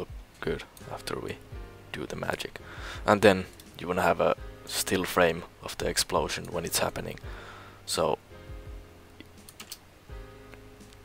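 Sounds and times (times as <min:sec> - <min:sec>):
quiet background music: 0:00.0 - 0:11.0
keyboard clicks: 0:09.2 - 0:09.8.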